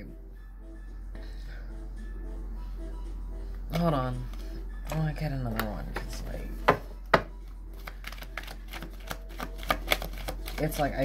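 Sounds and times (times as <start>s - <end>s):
cards shuffling clicks: 7.8s - 11.0s.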